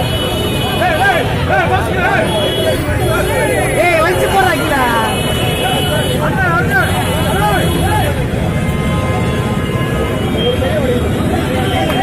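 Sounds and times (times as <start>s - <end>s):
low street rumble: 0.0s - 12.0s
men shouting: 0.7s - 8.2s.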